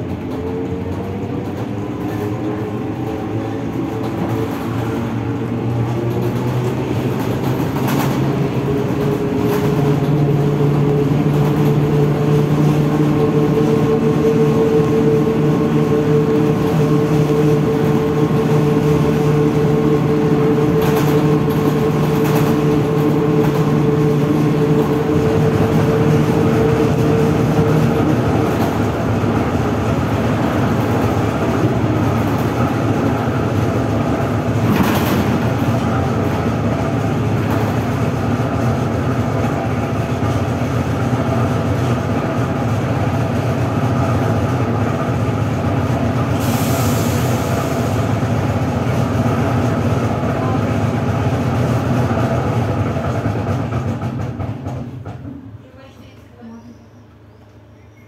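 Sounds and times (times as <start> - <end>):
trolleybus ride rumble: 0.0 - 58.0.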